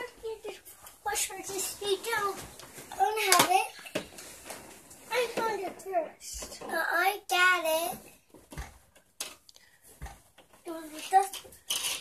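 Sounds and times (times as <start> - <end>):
faint rustling: 0.0 - 6.6.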